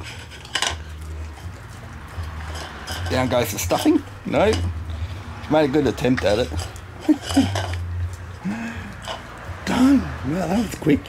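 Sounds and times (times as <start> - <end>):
bowl clattering against paving: 0.0 - 4.8, 5.5 - 7.9, 9.0 - 11.0
dog eating from a bowl: 0.0 - 11.0.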